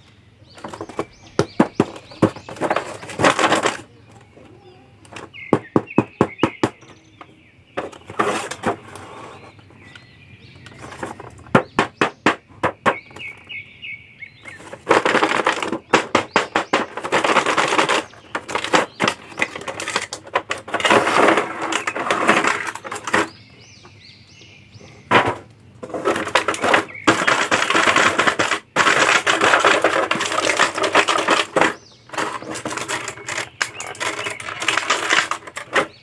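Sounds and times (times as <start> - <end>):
bird chirping: 0.0 - 36.0
plastic tray crackling: 14.5 - 23.4, 25.8 - 36.0.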